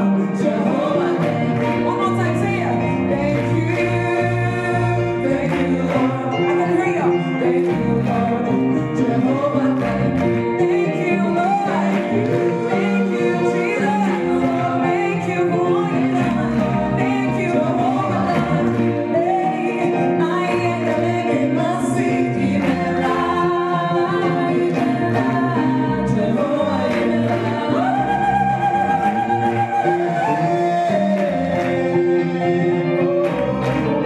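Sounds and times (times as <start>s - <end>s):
gospel choir singing with band: 0.0s - 34.0s.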